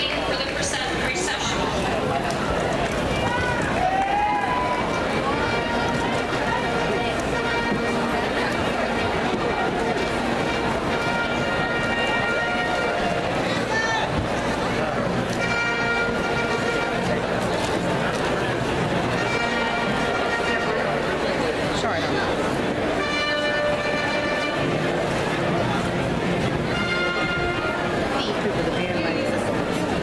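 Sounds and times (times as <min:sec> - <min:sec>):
crowd talking in echoing gym: 0:00.0 - 0:30.0
music with long held notes: 0:22.7 - 0:28.2.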